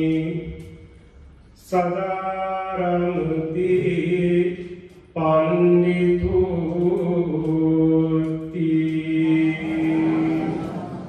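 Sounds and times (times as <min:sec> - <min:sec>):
monk chanting: 0:00.0 - 0:01.0, 0:01.6 - 0:11.0.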